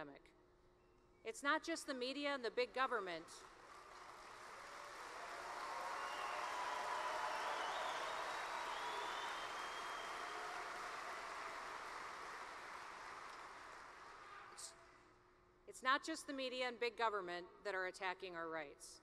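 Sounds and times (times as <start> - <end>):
audience applauding: 3.4 - 14.6
cheering voices: 4.6 - 12.8.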